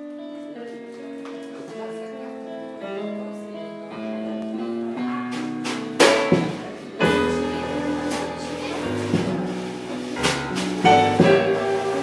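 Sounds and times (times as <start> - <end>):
blues band playing: 0.0 - 12.0.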